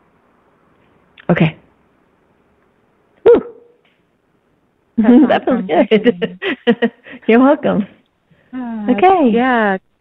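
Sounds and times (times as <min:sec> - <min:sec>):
brief pitched voiced sound: 0:03.2 - 0:03.8.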